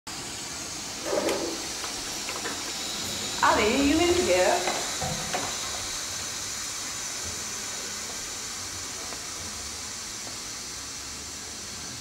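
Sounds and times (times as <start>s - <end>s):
toilet water running: 0.1s - 12.0s.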